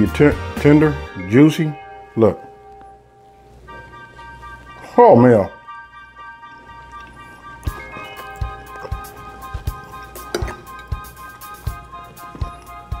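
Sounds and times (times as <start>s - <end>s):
held chords: 0.0s - 13.0s
low thumping beat: 7.4s - 13.0s.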